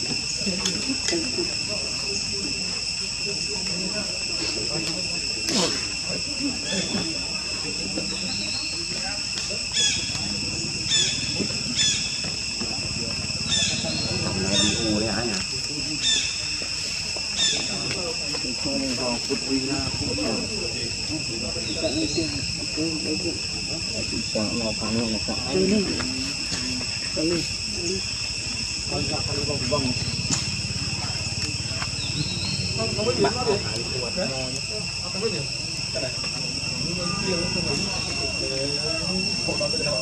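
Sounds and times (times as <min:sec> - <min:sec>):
distant voices murmuring: 0:00.0 - 0:40.0
insects chirping shrilly: 0:00.0 - 0:40.0.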